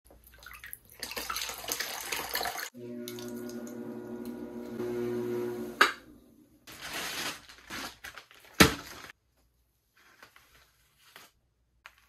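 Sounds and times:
water splashing and dripping: 0:00.1 - 0:03.8
pottery wheel motor humming: 0:02.8 - 0:06.5.

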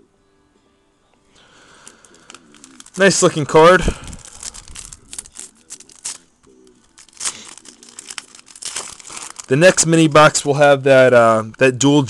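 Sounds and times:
foil wrapper crinkling: 0:01.4 - 0:10.5.

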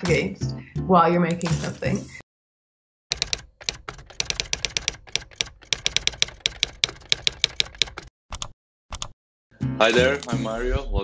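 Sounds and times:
keyboard typing clicks: 0:03.1 - 0:09.2.

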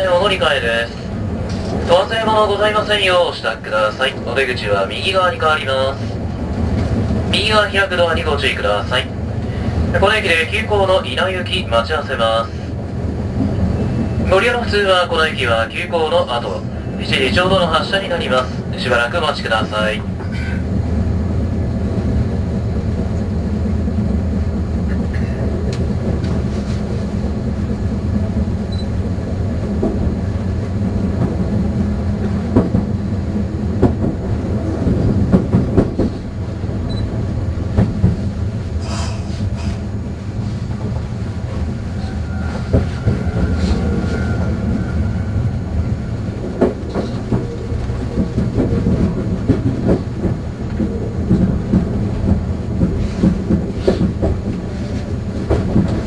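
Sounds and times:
train running gear rumble: 0:00.0 - 0:56.0
wheels clacking over rail joints: 0:46.3 - 0:56.0.

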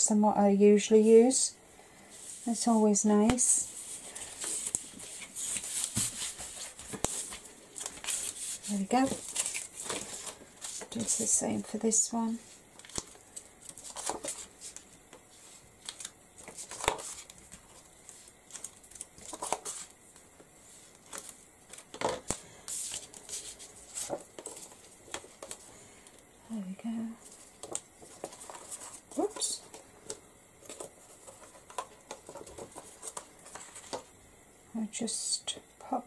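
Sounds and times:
paper rustling on a tabletop: 0:02.1 - 0:25.7, 0:27.2 - 0:34.1.

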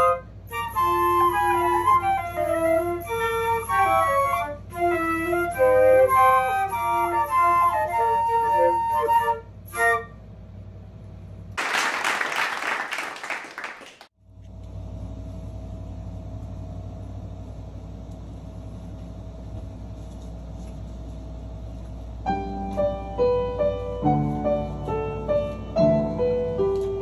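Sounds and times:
flute playing: 0:00.0 - 0:10.2
steady low hum: 0:14.2 - 0:27.0.

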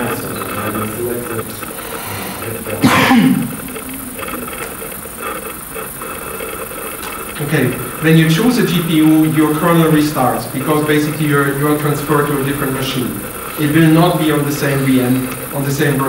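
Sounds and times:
low indistinct talk: 0:00.0 - 0:05.0
loud short cough: 0:02.8 - 0:03.6.

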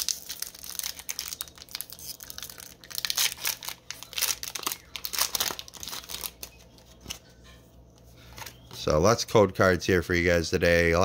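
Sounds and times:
foil wrapper crinkling and tearing: 0:00.0 - 0:07.2.

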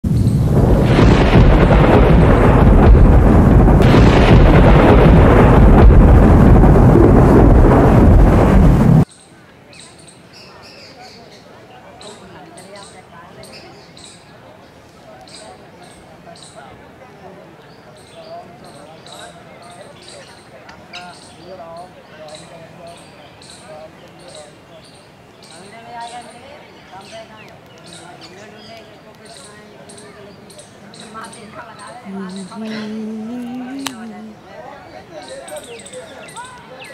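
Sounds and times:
thunder rumble with hard hits: 0:00.1 - 0:09.1
faint background voices: 0:09.1 - 0:36.9.

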